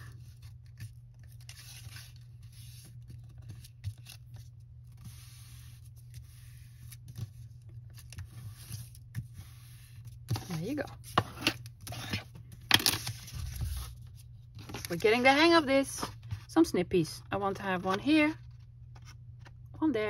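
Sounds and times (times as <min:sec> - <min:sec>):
paper rustling and rubbing: 0:00.0 - 0:16.5.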